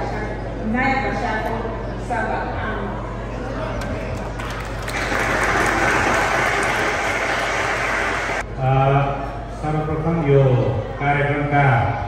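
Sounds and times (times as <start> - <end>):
crowd applauding: 3.8 - 8.4.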